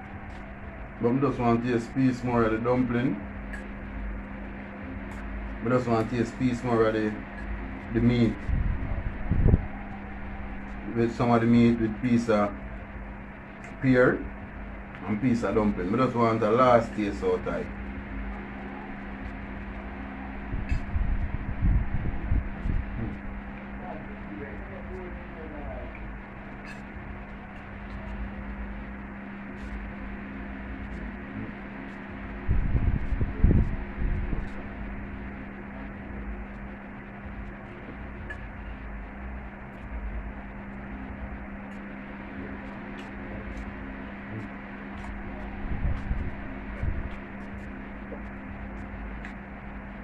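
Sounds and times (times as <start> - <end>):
steady electrical hum: 0.0 - 50.0.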